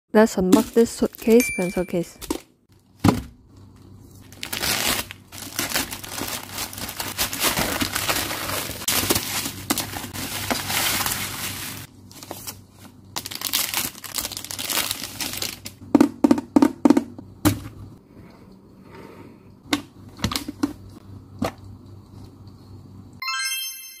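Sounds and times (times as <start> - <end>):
plastic rustling: 4.1 - 15.8
plastic bag crinkling and tearing: 4.2 - 12.6, 13.2 - 15.8
short bright chime: 23.2 - 24.0.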